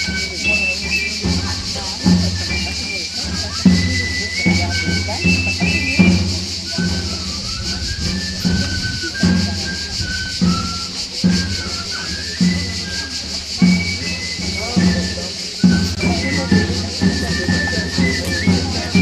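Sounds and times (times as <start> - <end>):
pipe playing dance tune: 0.0 - 19.0
side drum beat: 0.0 - 19.0.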